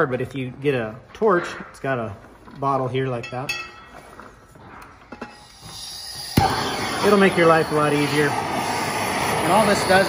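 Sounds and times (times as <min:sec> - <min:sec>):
gas hissing: 0:05.1 - 0:10.0
torch flame rushing: 0:05.5 - 0:10.0.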